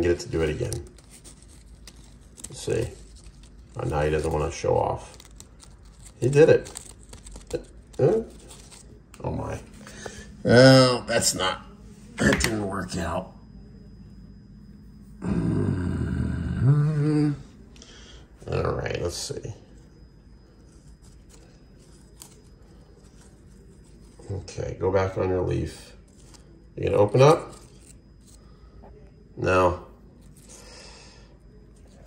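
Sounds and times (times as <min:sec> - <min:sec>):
man groaning: 0:15.2 - 0:17.4.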